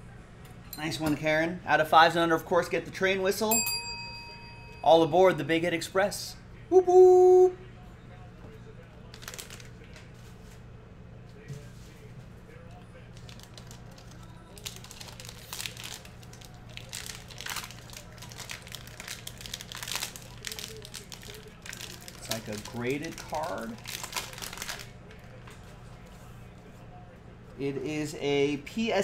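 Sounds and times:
foil wrapper crinkling and tearing: 9.0 - 10.1, 13.1 - 25.5.

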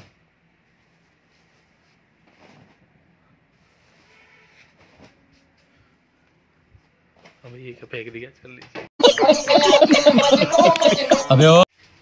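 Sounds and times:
man laughing: 9.0 - 11.7
man exclaiming: 10.5 - 11.6.

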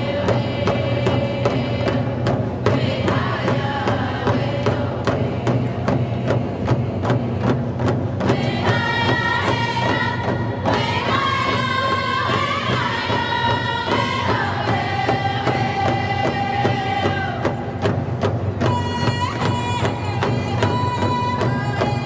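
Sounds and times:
steady drumbeat: 0.0 - 22.0.

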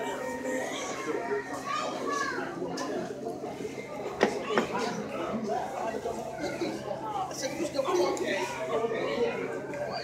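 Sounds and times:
chatter of voices: 0.0 - 10.0
children talking and playing: 0.0 - 10.0.

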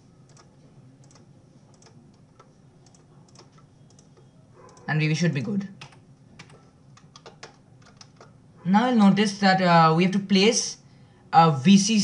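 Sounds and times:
low steady hum: 0.0 - 12.0
mouse and keyboard clicks: 0.3 - 8.4
person speaking: 4.8 - 7.9, 8.6 - 12.0.

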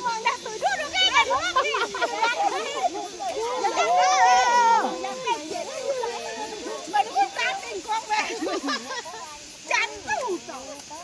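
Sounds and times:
women calling out and chattering: 0.0 - 11.0.

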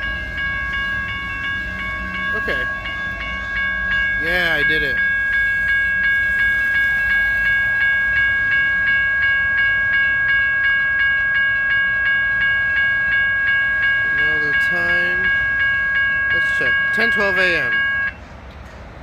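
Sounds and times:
railroad crossing bell ringing: 0.0 - 18.2
freight train cars rumbling: 0.0 - 19.0.

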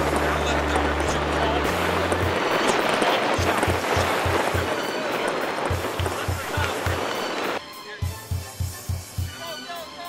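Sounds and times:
background music with low bass: 0.0 - 2.4.

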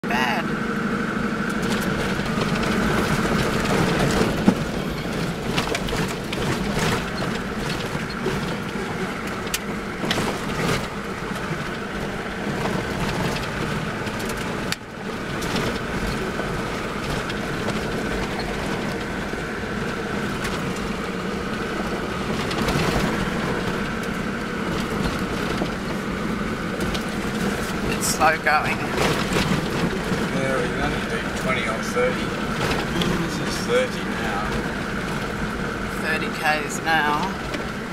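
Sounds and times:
engine and drivetrain hum: 0.0 - 37.9
vehicle knocks and rattles: 1.4 - 37.9.

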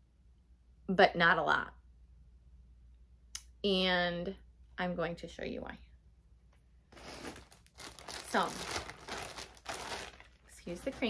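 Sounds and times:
plastic bag crinkling: 7.0 - 11.0.

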